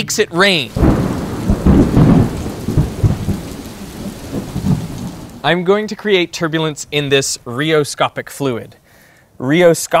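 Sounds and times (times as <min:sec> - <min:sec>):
steady rain: 0:00.4 - 0:10.0
thunder rumbling: 0:00.7 - 0:07.2.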